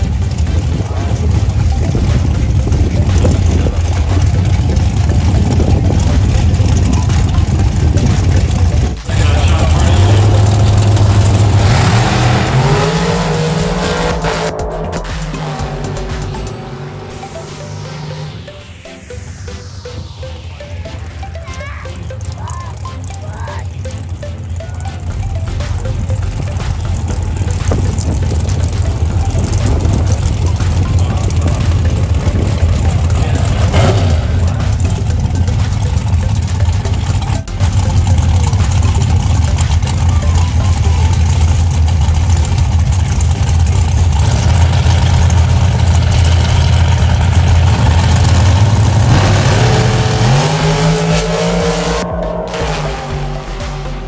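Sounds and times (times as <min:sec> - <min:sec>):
drag racing car engine running: 0:00.0 - 0:54.0
rising tone: 0:00.0 - 0:54.0.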